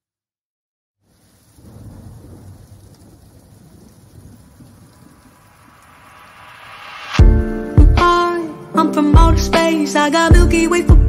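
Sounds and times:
rain hiss: 1.0s - 10.2s
low thunder rumble: 1.1s - 8.0s.

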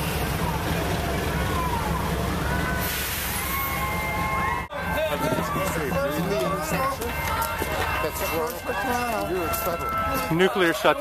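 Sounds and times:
voices talking: 4.4s - 11.0s.

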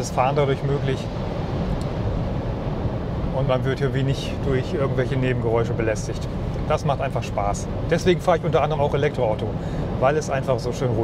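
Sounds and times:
road rumble: 0.0s - 11.0s
wind noise: 0.0s - 11.0s.

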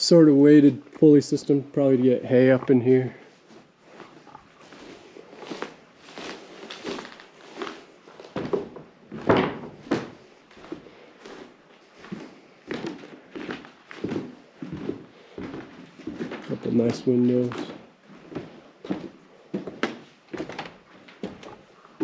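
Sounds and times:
footsteps on wooden floorboards: 2.5s - 22.0s.

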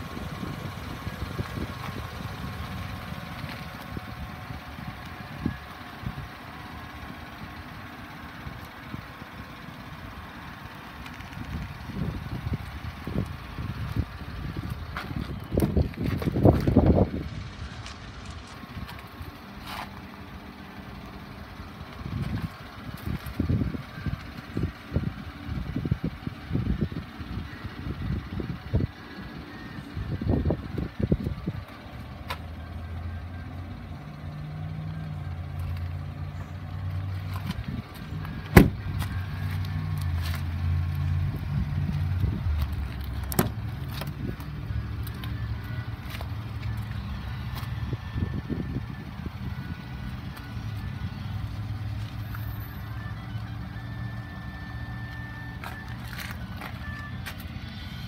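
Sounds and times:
vehicle engine humming: 0.0s - 58.0s.

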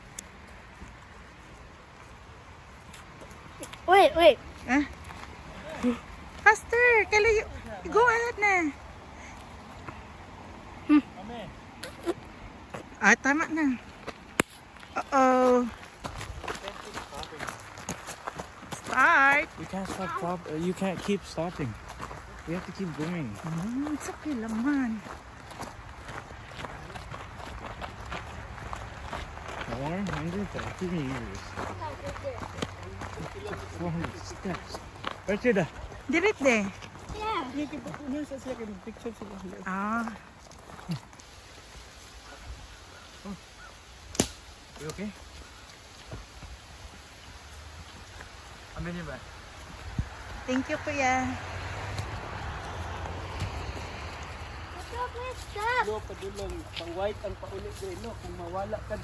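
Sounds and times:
footsteps on gravel: 0.0s - 8.3s, 11.8s - 43.1s, 44.7s - 59.0s.

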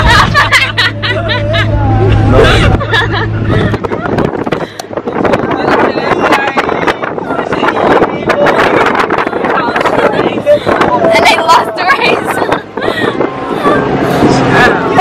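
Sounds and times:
women laughing: 0.0s - 5.2s, 8.6s - 14.6s
car driving drone: 0.0s - 15.0s
wind: 0.0s - 15.0s
women talking: 8.6s - 13.8s.

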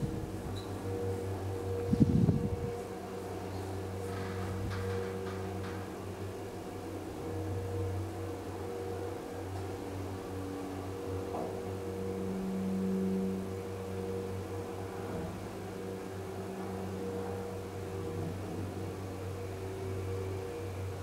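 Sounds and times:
elevator mechanical hum: 0.0s - 21.0s.

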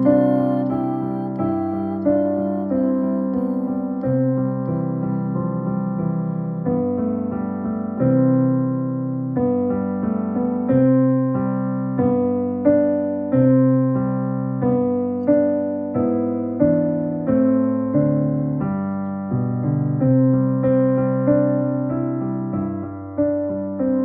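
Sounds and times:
slow piano piece: 0.0s - 24.0s.

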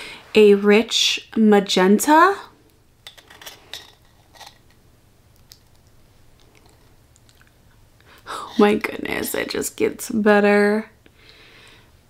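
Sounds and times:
soft mouth sounds: 5.4s - 8.7s.

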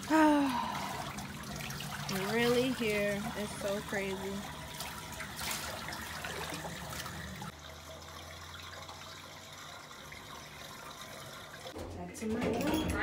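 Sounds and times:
water trickling into gutter: 0.0s - 12.8s.

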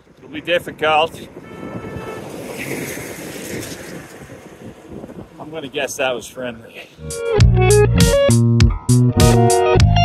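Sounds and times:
wind buffeting microphone: 0.0s - 6.6s
truck engine and tyre noise: 0.0s - 7.0s
truck horn honk: 1.4s - 2.6s.

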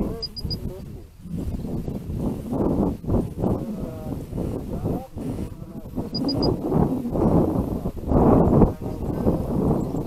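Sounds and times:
wind buffeting microphone: 0.0s - 10.0s
short high beeps: 0.2s - 0.6s, 6.1s - 6.6s.

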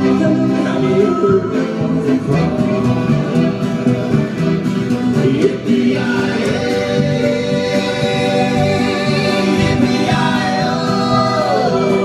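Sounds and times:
accordion: 0.0s - 12.0s
upright bass: 0.0s - 12.0s
fiddle: 6.4s - 12.0s.

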